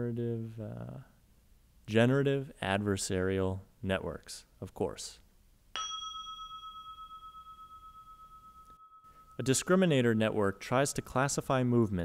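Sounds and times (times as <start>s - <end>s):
bell-like chime: 5.8s - 10.2s.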